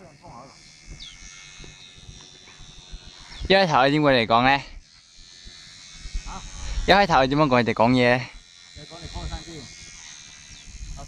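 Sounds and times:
model plane motor whine: 0:00.0 - 0:11.0.

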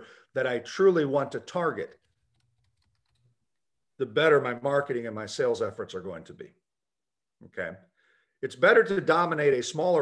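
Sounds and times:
faint irregular clicks: 0:01.8 - 0:03.7.

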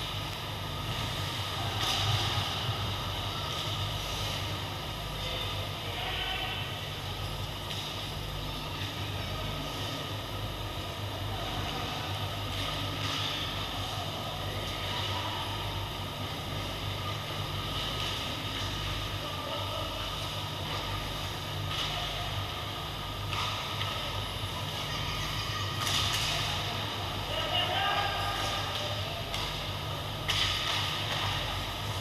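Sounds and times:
low mechanical hum: 0:00.0 - 0:32.0.

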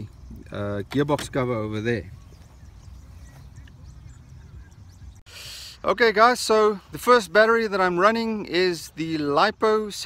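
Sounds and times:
wind rumble on microphone: 0:00.0 - 0:05.2
distant bird calls: 0:00.0 - 0:10.0
short hiss: 0:05.3 - 0:05.8.

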